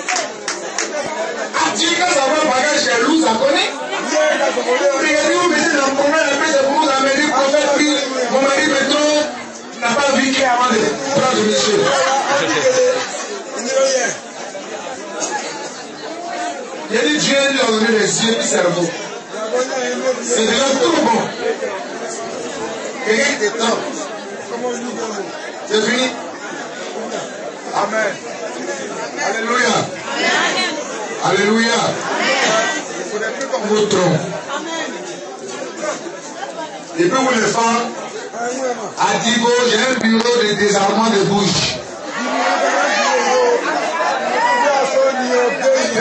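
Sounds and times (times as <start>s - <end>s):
chatter of voices: 0.0s - 46.0s.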